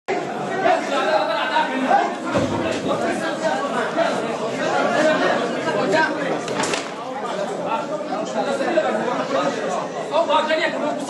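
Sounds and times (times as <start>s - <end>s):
crowd chatter: 0.1s - 11.0s.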